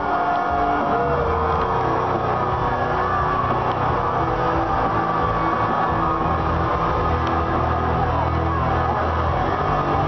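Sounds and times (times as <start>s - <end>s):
entrance music over sound system: 0.0s - 10.0s.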